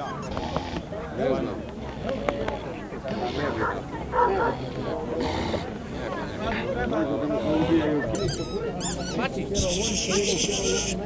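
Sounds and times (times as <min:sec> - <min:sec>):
people talking: 0:00.0 - 0:11.0
dog barking: 0:03.4 - 0:04.7.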